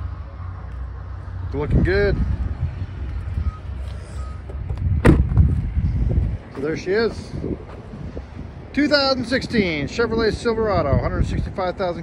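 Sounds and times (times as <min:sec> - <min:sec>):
wind rumble: 0:00.0 - 0:12.0
microphone handling noise: 0:03.0 - 0:06.4.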